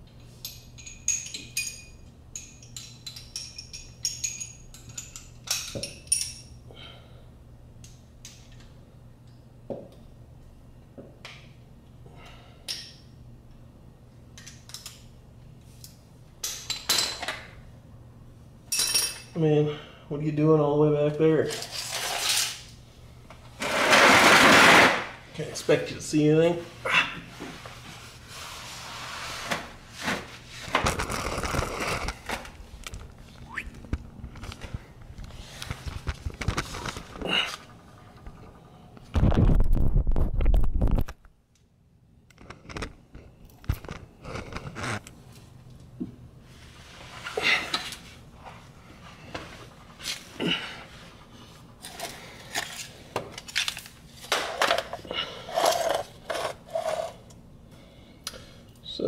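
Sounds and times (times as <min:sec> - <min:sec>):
loud rustling noise: 0:23.5 - 0:25.2, 0:34.0 - 0:37.3.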